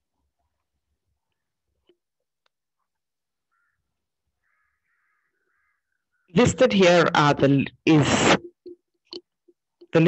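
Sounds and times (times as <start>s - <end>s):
faint animal calls: 3.5s - 6.4s.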